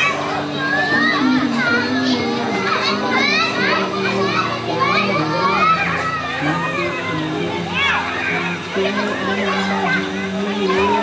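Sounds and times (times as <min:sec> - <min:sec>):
children shouting in pool: 0:00.0 - 0:11.0
music: 0:00.0 - 0:11.0.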